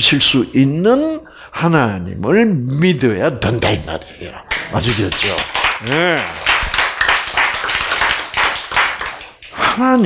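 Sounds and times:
group of people clapping: 4.5s - 10.0s.

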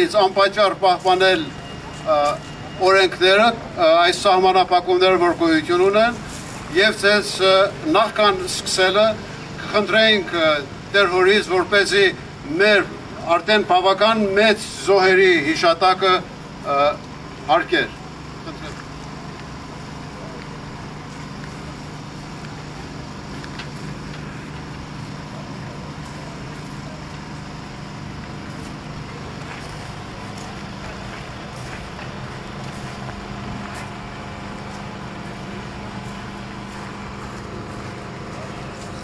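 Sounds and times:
low rumble of traffic: 0.0s - 39.0s.

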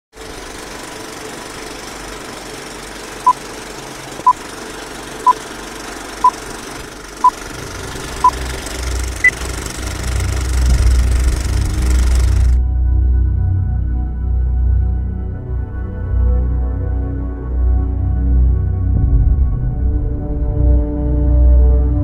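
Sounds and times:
projector hiss and rattle: 0.2s - 12.6s
low rumble: 7.6s - 15.0s, 17.8s - 21.0s
short countdown beeps: 8.2s - 8.4s
higher-pitched beep: 8.2s - 8.5s.

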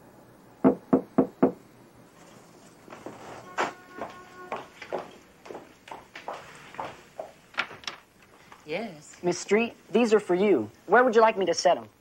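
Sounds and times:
knocks on a door: 0.6s - 1.6s.

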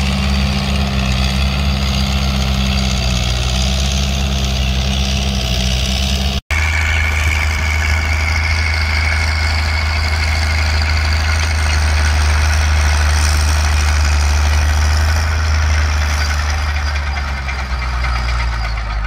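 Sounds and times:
tractor engine droning: 0.0s - 19.0s.

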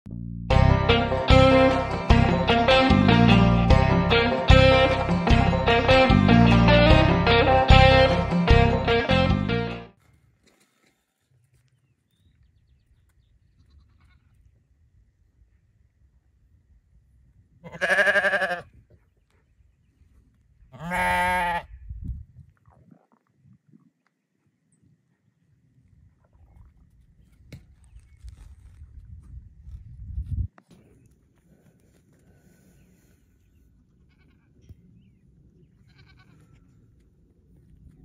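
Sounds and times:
sheep bleating: 17.6s - 18.7s, 20.8s - 21.7s, 34.0s - 34.5s, 35.8s - 36.6s.

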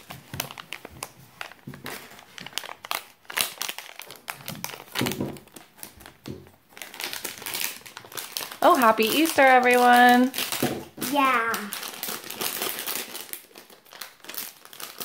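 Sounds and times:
plastic wrapper crinkling: 0.0s - 15.0s.

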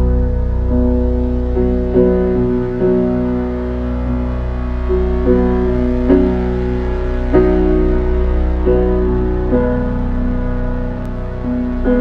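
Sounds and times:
low synthesizer drone: 0.0s - 12.0s
soft piano chords: 0.0s - 12.0s.

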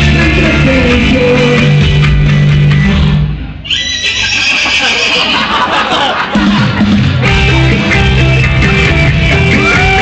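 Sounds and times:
band music: 0.0s - 10.0s
horse whinny: 3.6s - 5.5s.

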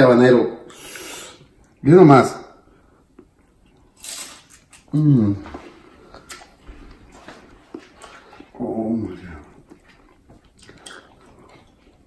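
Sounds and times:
man moaning with mouth closed: 4.9s - 5.5s
chewing clicks: 9.5s - 12.0s.

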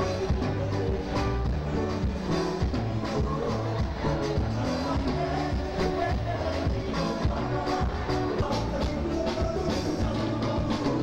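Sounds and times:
steady drum beat: 0.0s - 11.0s
sustained bass notes: 0.0s - 11.0s.

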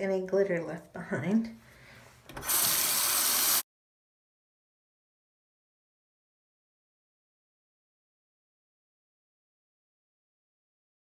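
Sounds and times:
tap water running into sink: 2.3s - 3.6s.

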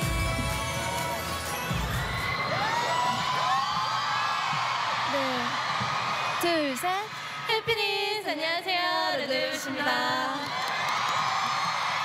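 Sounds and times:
pop music: 0.0s - 3.0s
crowd cheering and screaming: 0.0s - 8.0s, 9.4s - 12.0s.

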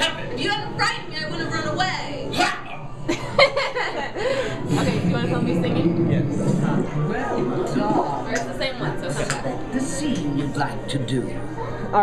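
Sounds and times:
laughter and chuckling: 3.1s - 4.7s.

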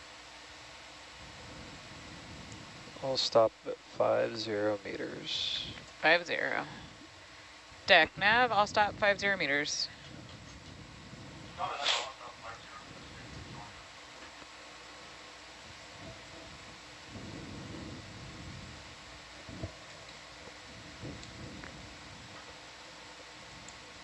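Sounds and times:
steady hiss: 0.0s - 24.0s.

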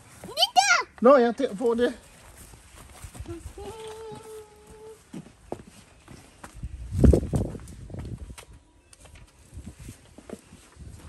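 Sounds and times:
footsteps on paving: 0.0s - 11.0s.

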